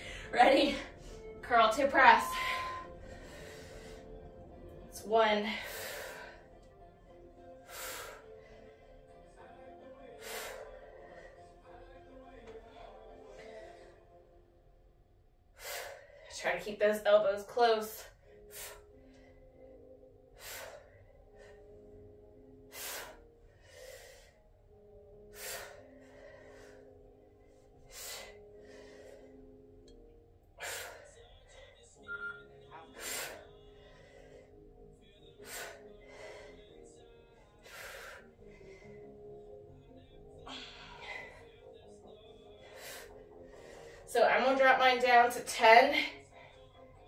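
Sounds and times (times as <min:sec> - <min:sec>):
woman breathing forcefully: 0:00.0 - 0:09.2, 0:09.9 - 0:11.7, 0:15.4 - 0:16.4, 0:17.9 - 0:32.0, 0:32.7 - 0:44.2
background music: 0:00.0 - 0:47.0.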